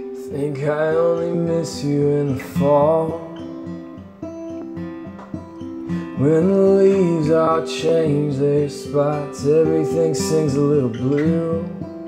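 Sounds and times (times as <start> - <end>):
person singing: 0.0 - 3.7, 5.8 - 12.0
acoustic guitar chords: 0.0 - 12.0.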